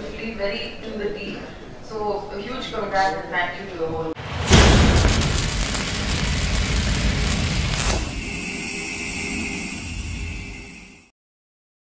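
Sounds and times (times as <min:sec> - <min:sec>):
rumbling whoosh: 0:04.2 - 0:08.3
sustained hiss: 0:04.5 - 0:10.8
steady high tone: 0:04.5 - 0:11.1.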